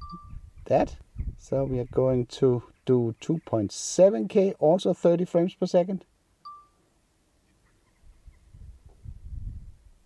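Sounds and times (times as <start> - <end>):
short electronic beep: 0.0 - 0.3, 6.4 - 6.8.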